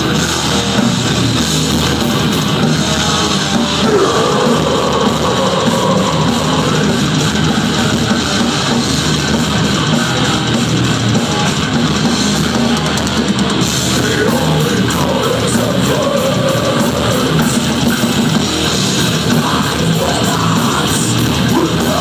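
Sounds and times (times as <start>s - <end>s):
drum kit: 0.0s - 22.0s
electric guitar: 0.0s - 22.0s.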